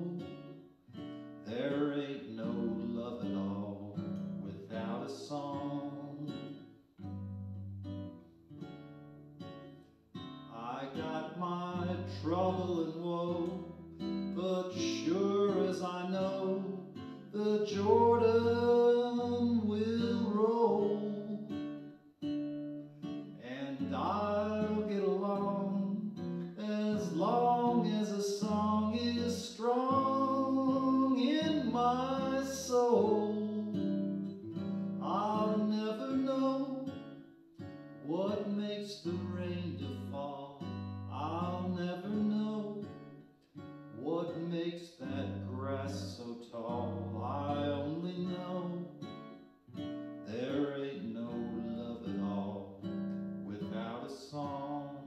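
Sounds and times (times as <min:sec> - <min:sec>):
man singing slow ballad: 0:00.0 - 0:00.5, 0:01.5 - 0:06.6, 0:10.5 - 0:21.8, 0:23.3 - 0:37.0, 0:38.0 - 0:43.0, 0:44.0 - 0:49.1, 0:50.3 - 0:55.0
acoustic guitar strumming: 0:00.0 - 0:55.0.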